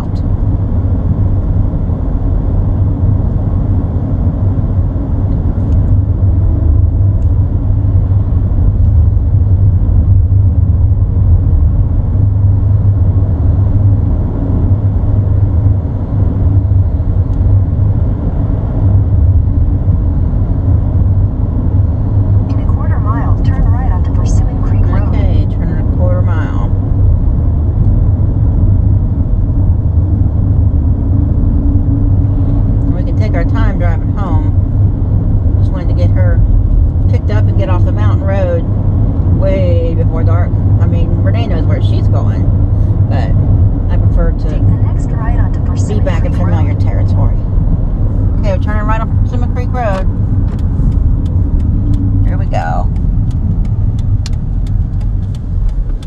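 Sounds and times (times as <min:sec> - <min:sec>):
van engine and tyre rumble: 0:00.0 - 0:56.0.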